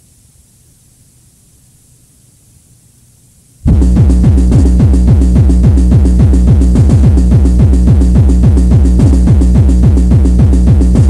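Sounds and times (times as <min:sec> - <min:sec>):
faint tape hiss: 0:00.0 - 0:11.0
electronic dance music: 0:03.7 - 0:11.0.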